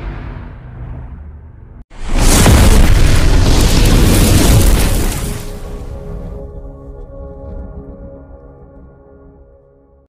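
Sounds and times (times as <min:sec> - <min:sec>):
loud explosion boom: 0:02.0 - 0:06.5.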